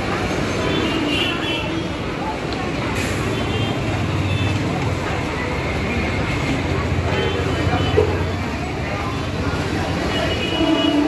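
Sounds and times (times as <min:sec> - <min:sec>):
dense road traffic rumble: 0:00.0 - 0:11.0.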